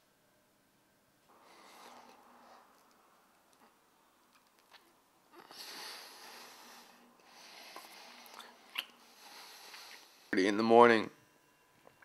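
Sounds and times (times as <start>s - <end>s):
person sucking noisy breaths: 1.3s - 2.8s, 5.3s - 10.3s.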